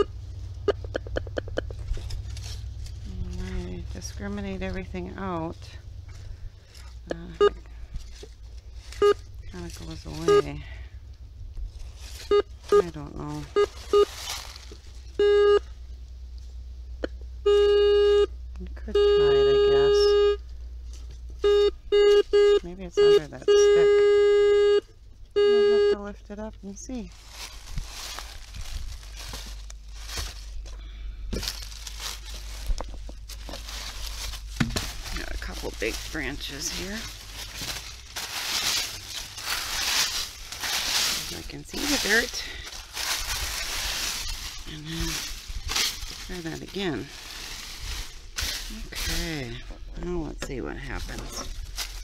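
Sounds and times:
dry leaves and twigs scraped aside: 0:00.0 - 0:15.2, 0:26.6 - 0:52.0
metal detector beeps: 0:08.9 - 0:09.3, 0:10.2 - 0:10.6, 0:12.2 - 0:14.2, 0:15.2 - 0:15.7, 0:17.4 - 0:18.3, 0:18.9 - 0:20.4, 0:21.4 - 0:26.1.

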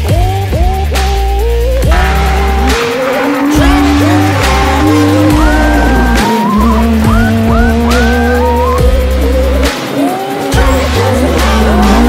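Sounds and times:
loud music with bass beat: 0:00.0 - 0:12.0
car engine revving hard: 0:01.8 - 0:12.0.

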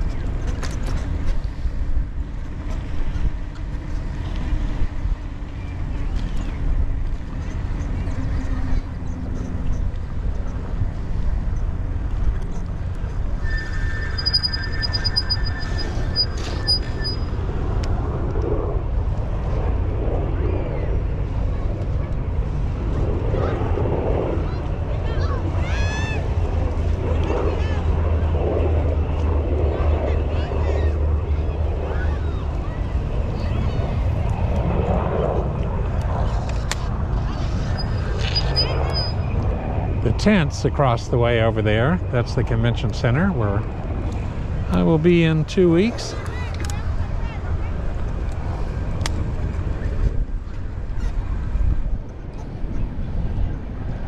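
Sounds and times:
wind rumble on microphone: 0:00.0 - 0:54.0
high steady tone: 0:13.4 - 0:17.4
faint voices: 0:19.3 - 0:54.0.

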